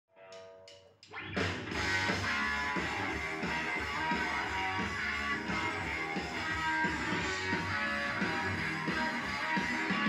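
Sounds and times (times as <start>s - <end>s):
rock music from loudspeakers: 0.3s - 10.0s.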